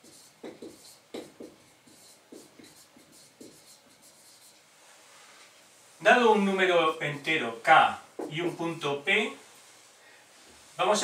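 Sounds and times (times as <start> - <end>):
pen writing strokes and taps: 0.0 - 4.0.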